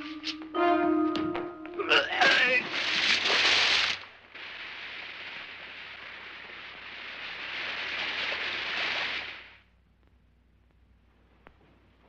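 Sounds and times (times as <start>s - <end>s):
rushing hiss: 2.4s - 9.7s.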